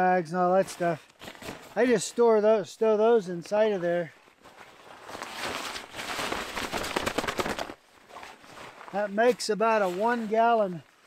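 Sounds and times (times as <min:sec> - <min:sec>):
fabric rustling and crinkling: 0:03.5 - 0:11.0.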